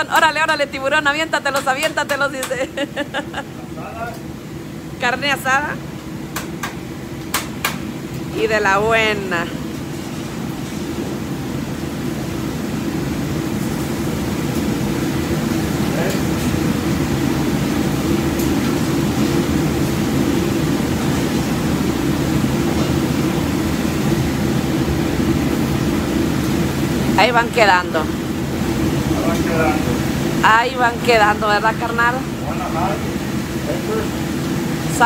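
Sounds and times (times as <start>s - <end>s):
exhaust hood fan rumble: 0.0s - 35.0s.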